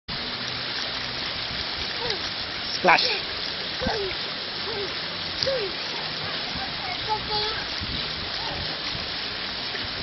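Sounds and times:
water jets hissing and splattering: 0.1 - 10.0.

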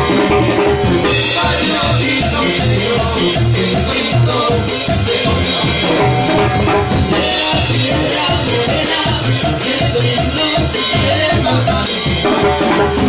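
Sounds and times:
bass line: 0.0 - 13.0
drum kit with cymbals: 0.0 - 13.0.

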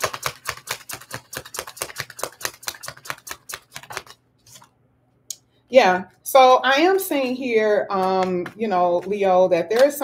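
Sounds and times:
cards being shuffled by hand: 0.0 - 4.8.

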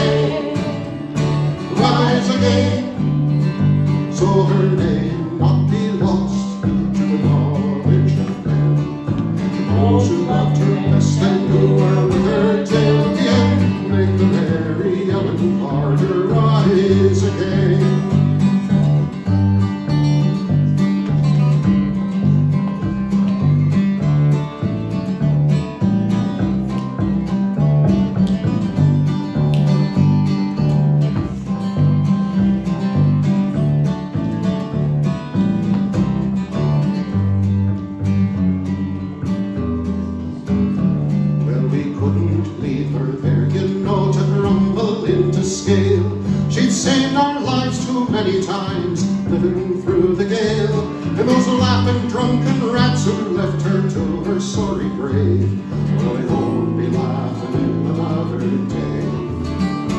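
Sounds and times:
plucked upright bass: 0.0 - 59.9
strummed acoustic guitar: 0.0 - 59.9.

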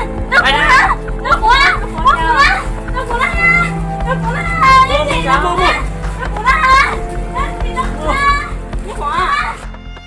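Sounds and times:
low background music: 0.0 - 10.0
high-pitched voices shouting: 0.2 - 4.9.

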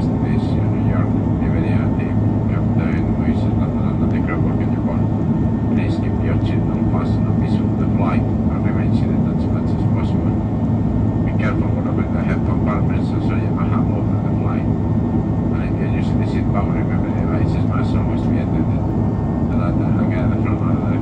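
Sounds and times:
faint voices: 0.0 - 10.3, 11.3 - 14.7, 15.6 - 18.8, 19.4 - 21.0
jet engines rumbling: 0.0 - 21.0.

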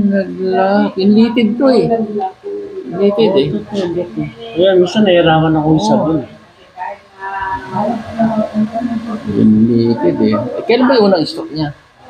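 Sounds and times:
man talking: 0.0 - 6.4, 7.7 - 11.8.

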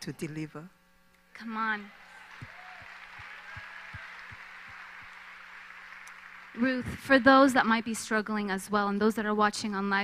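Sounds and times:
audience applause: 2.0 - 7.5
clapping thumps on microphone: 2.3 - 5.1.

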